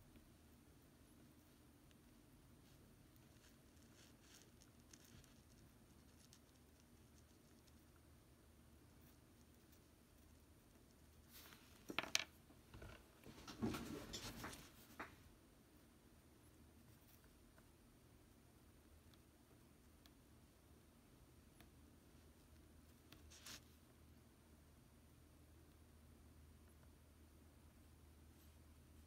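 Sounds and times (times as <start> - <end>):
light scratching and tapping: 2.6 - 8.0, 8.9 - 15.2.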